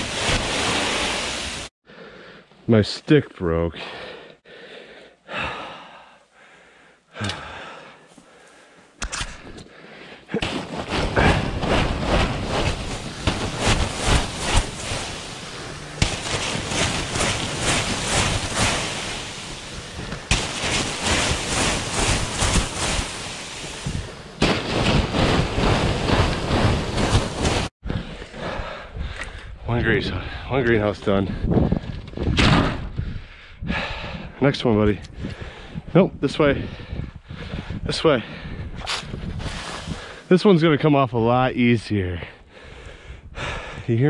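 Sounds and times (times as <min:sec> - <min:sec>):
snow sliding off plastic sheeting: 0:00.0 - 0:01.7, 0:10.3 - 0:27.7, 0:39.4 - 0:40.6.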